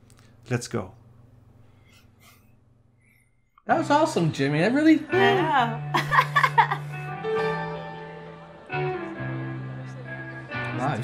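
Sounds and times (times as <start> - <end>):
acoustic guitar playing: 3.8 - 11.0.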